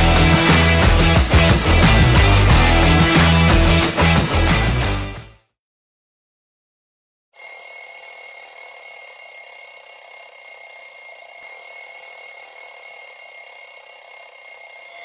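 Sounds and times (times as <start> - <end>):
alarm clock ringing: 7.4 - 15.0.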